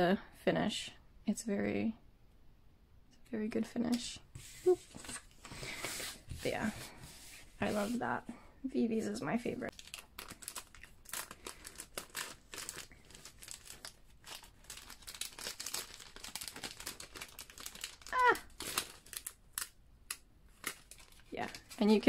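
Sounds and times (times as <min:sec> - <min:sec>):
plastic packaging crinkling: 0:09.7 - 0:22.0.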